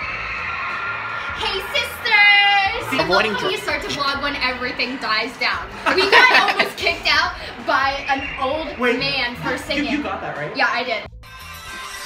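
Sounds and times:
person singing: 2.8 - 3.6.

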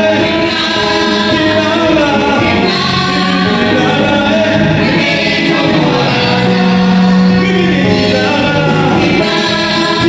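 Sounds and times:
group singing gospel in harmony: 0.0 - 10.0.

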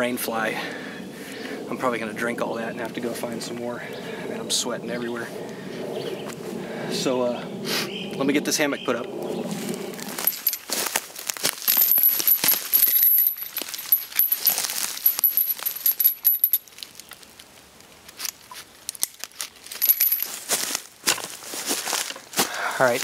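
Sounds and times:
metal rings and carabiner clinking: 10.0 - 17.2, 18.1 - 21.3.

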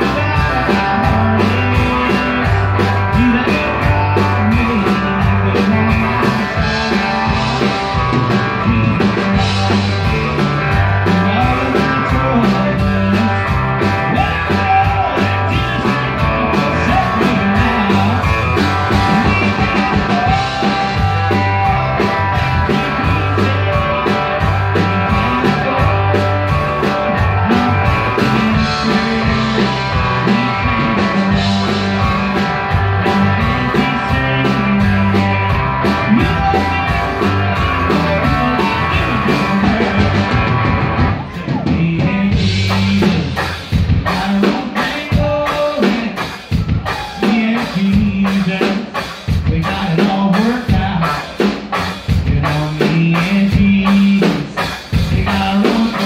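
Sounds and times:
bass guitar: 0.0 - 56.0
drum beat: 0.0 - 56.0
electric guitar: 0.0 - 56.0.

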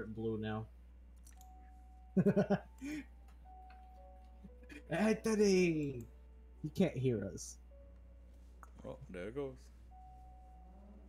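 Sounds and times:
person laughing: 2.2 - 3.0.

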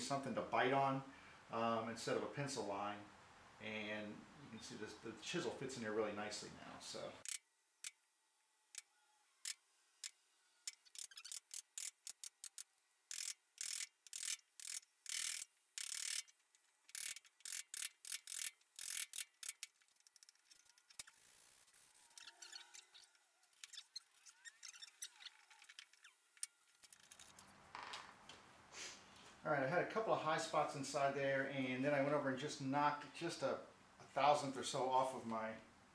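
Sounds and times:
chisel scraping wood: 20.3 - 27.4.

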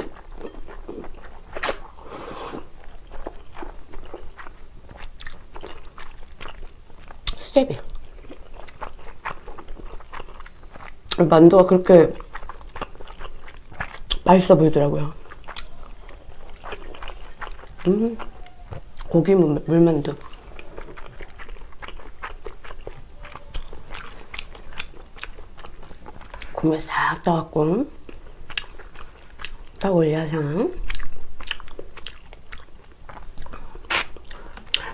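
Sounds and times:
close wet chewing: 0.0 - 19.3, 19.9 - 26.6, 28.0 - 29.9, 30.8 - 34.9.

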